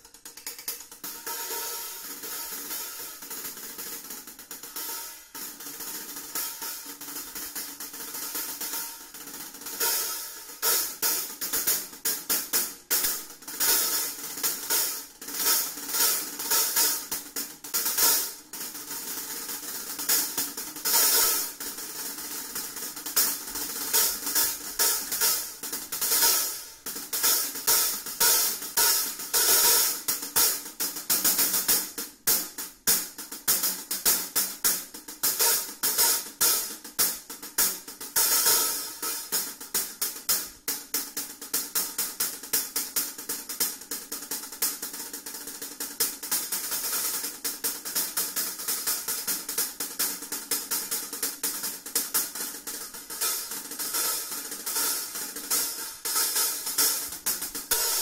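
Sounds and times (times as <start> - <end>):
hi-hat cymbals played with drumsticks: 0.0 - 58.0.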